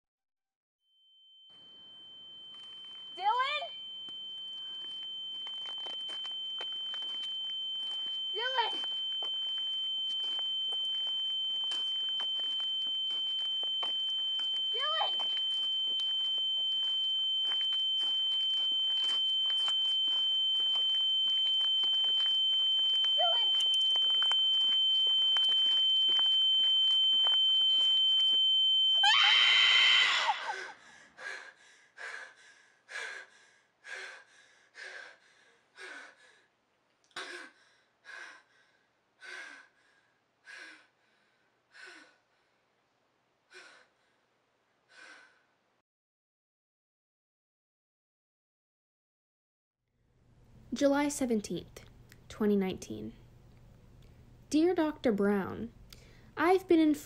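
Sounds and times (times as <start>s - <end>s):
high-pitched ringing tone: 0.8s - 30.8s
loud scream: 29.0s - 30.8s
heavy panting gasps: 30.8s - 36.4s.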